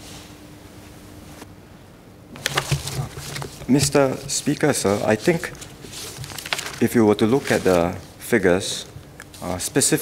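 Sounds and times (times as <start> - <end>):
faint electrical hum: 0.0 - 10.0
papers rustling at a microphone: 2.4 - 9.6.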